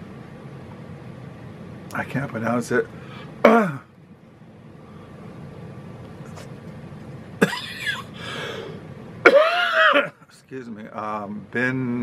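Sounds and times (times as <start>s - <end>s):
man coughing: 3.4s - 3.9s, 7.4s - 8.2s, 9.2s - 10.4s.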